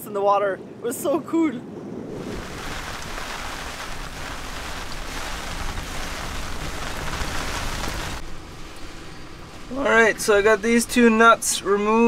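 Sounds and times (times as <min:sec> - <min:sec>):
wind buffeting microphone: 0:00.6 - 0:12.0
storm wind and rain hissing: 0:00.9 - 0:12.0.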